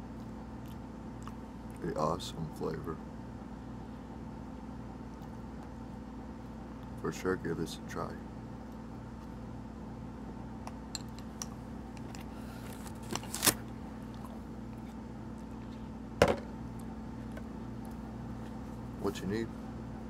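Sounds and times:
low electrical hum: 0.0s - 20.0s.

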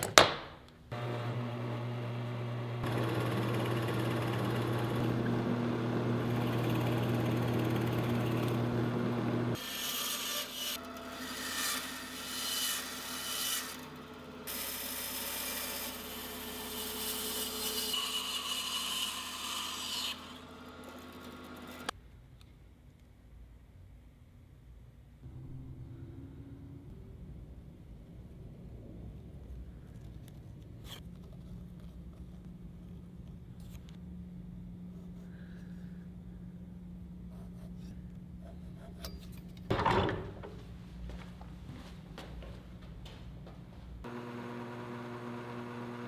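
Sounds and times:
drill press motor humming: 0.9s - 9.6s, 44.1s - 46.0s
bandsaw cutting wood: 0.9s - 21.9s, 44.1s - 46.0s
drill boring into wood: 1.0s - 9.6s.

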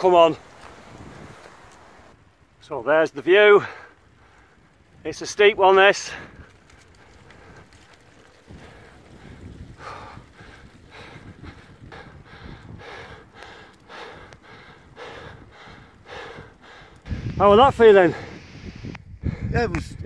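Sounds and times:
wind rumble on microphone: 0.3s - 2.5s, 4.0s - 20.0s
person breathing hard: 8.5s - 17.2s.

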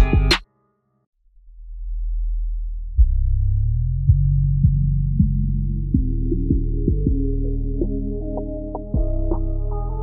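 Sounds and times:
trap beat: 0.0s - 0.4s
deep sub-bass tone: 1.3s - 10.0s.

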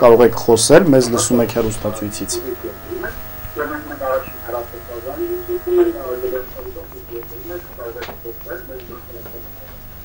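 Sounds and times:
electrical buzz: 0.0s - 10.0s.

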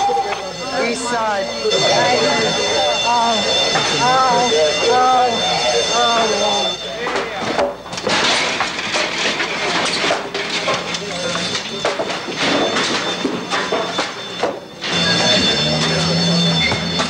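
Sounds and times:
voices in background: 0.0s - 8.0s, 9.4s - 17.0s
wooden debris clattering and scraping: 7.1s - 14.6s.

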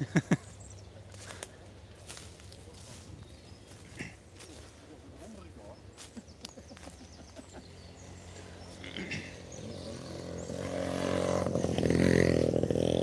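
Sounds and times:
vehicle engine humming: 0.0s - 13.0s
engine cough: 3.8s - 4.3s, 8.7s - 13.0s.

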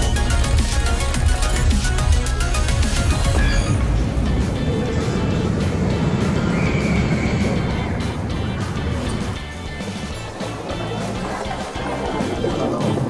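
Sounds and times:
background music: 0.0s - 13.0s
roller coaster rumbling past: 3.4s - 12.9s.

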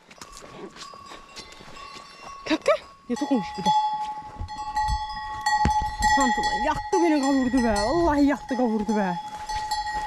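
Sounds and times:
cowbell ringing: 0.0s - 10.0s.

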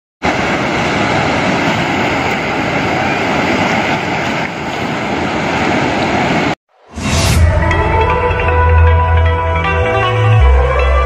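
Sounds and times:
water rushing through dam spillway: 0.2s - 6.6s.

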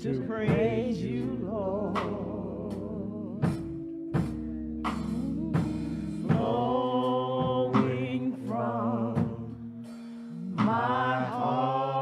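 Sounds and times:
choir singing: 5.4s - 9.8s, 10.4s - 12.0s.

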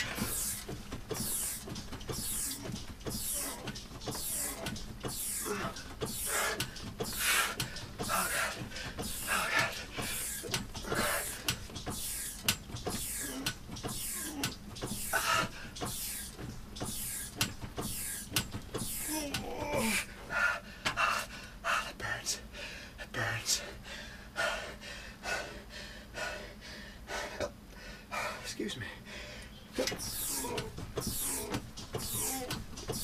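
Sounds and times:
man gasping: 0.0s - 1.6s, 2.2s - 12.2s, 13.0s - 16.3s, 18.8s - 21.7s, 22.4s - 32.5s
rowing machine clicking: 0.0s - 21.3s, 29.7s - 33.0s
man panting hard: 0.0s - 33.0s
man groaning: 19.0s - 20.2s.

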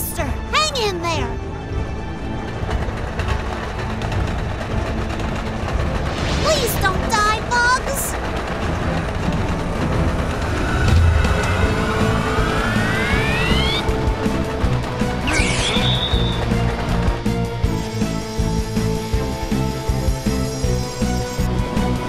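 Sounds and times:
background music: 0.0s - 22.0s
rising turbine whine: 1.4s - 22.0s.

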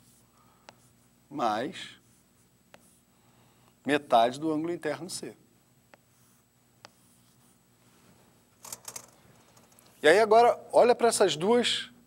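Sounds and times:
chalk writing on chalkboard: 2.0s - 3.1s, 6.0s - 7.6s.

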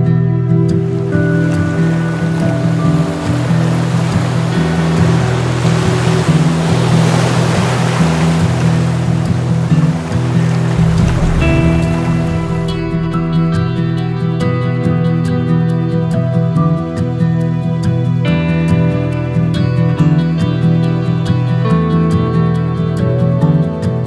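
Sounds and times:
gentle guitar music: 0.0s - 24.0s
sea surf washing: 0.5s - 16.8s.

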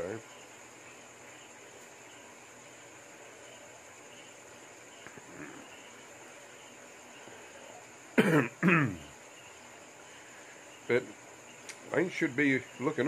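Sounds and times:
faint hiss: 0.0s - 13.0s
faint click: 11.6s - 11.8s.

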